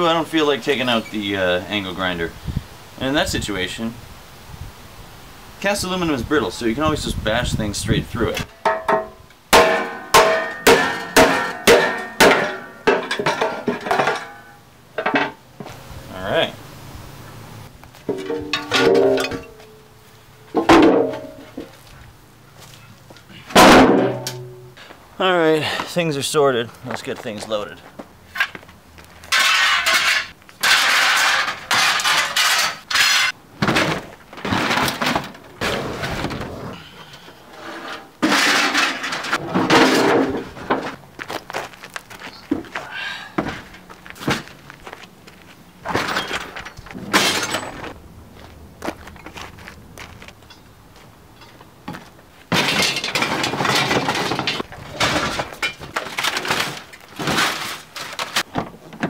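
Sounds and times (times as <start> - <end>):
scrap metal clattering in buckets: 8.4 - 15.4, 18.0 - 19.8, 20.6 - 21.8, 23.5 - 24.8, 29.2 - 41.0, 45.8 - 48.0, 52.5 - 58.6.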